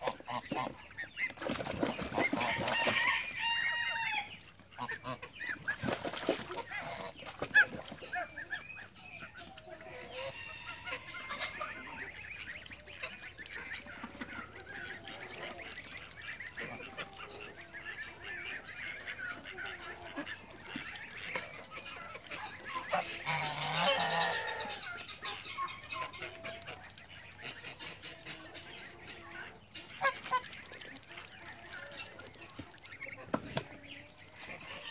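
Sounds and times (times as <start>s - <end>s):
geese honking: 0.0s - 1.2s, 2.3s - 5.7s, 6.5s - 33.2s.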